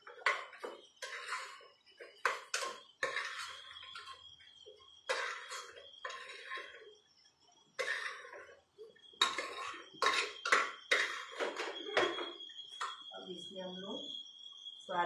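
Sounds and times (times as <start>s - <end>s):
metal spoon scraping in a pot: 0.0s - 4.3s, 5.1s - 6.9s, 7.8s - 8.6s, 9.2s - 13.0s
woman speaking: 13.2s - 14.0s.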